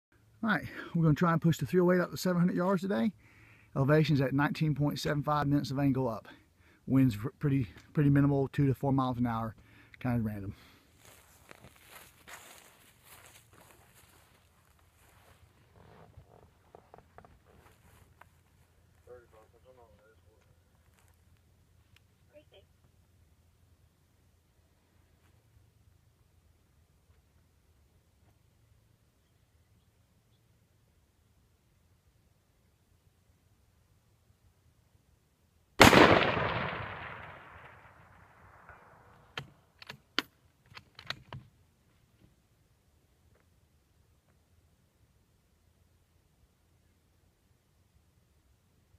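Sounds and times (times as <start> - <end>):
soft rustles: 10.9 - 19.6
rifle shot with echo: 35.8 - 39.2.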